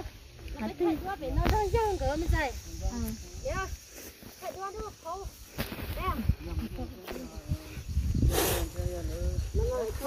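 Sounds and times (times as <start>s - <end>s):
people talking: 0.4s - 3.8s, 4.4s - 5.4s, 6.0s - 10.0s
brief hiss: 8.2s - 8.8s.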